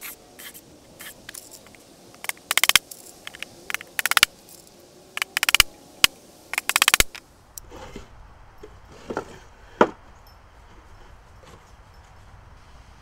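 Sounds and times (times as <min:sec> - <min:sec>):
wood knocking and scraping: 0:07.7 - 0:10.1.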